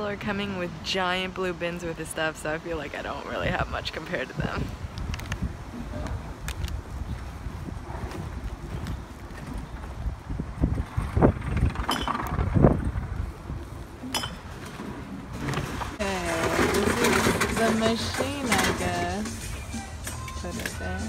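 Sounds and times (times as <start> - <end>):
wind noise: 0.0 - 19.2.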